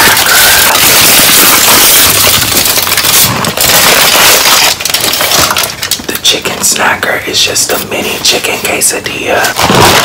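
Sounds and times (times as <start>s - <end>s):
aluminium foil crinkling: 0.0s - 6.7s, 9.4s - 10.0s.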